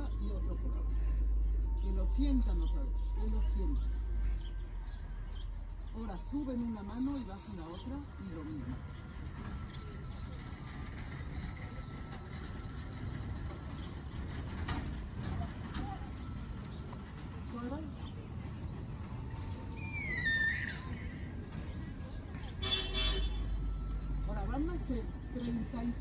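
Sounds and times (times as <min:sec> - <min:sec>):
low outdoor rumble: 0:00.0 - 0:26.0
vehicle horn toot: 0:22.6 - 0:23.6.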